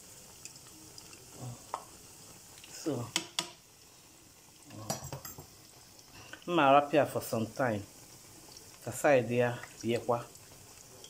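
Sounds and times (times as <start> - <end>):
oil sizzling: 0.0 - 11.0
utensil clinking against pot: 4.8 - 5.5.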